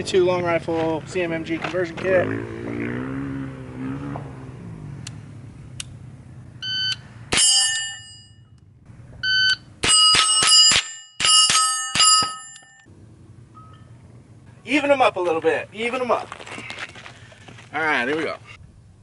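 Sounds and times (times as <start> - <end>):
steel plates ringing: 7.3 - 8.6, 9.8 - 12.9.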